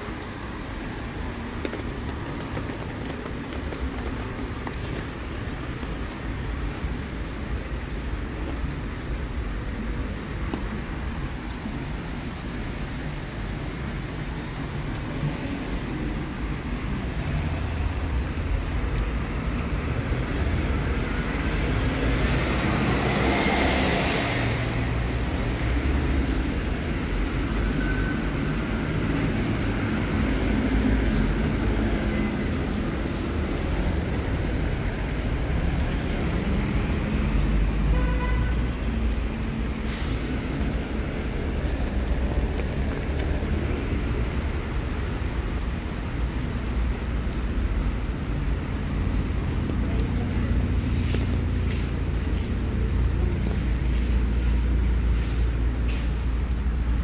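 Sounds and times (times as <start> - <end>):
traffic rumble on wet road: 0.0 - 57.0.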